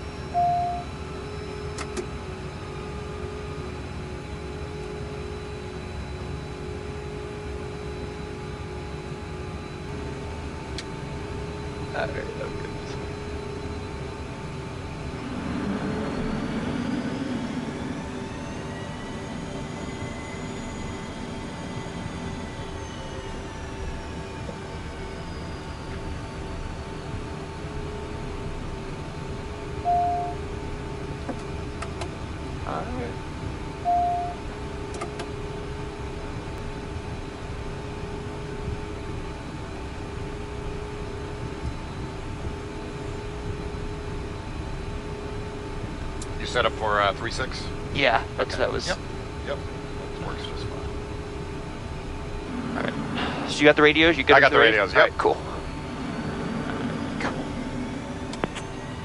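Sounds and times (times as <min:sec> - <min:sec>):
jet engines humming and whining: 0:00.0 - 0:59.0
short electronic beeps: 0:00.3 - 0:00.9, 0:29.8 - 0:30.4, 0:33.8 - 0:34.4.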